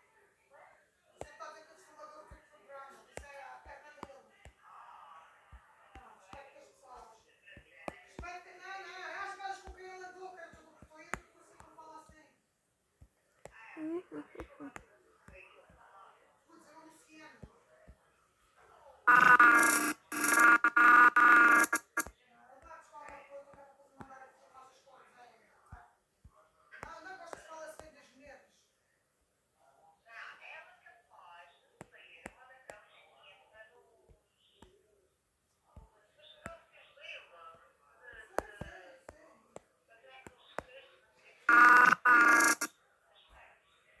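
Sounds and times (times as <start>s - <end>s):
electronic ringing tone: 19.1s - 22.0s, 41.5s - 42.7s.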